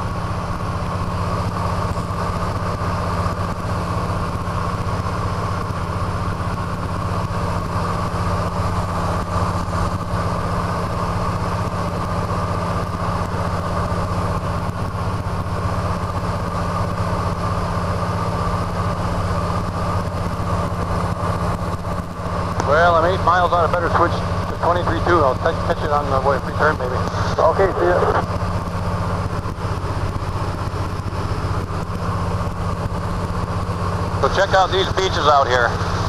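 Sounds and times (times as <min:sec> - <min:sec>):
radial engine and propeller running: 0:00.0 - 0:36.0.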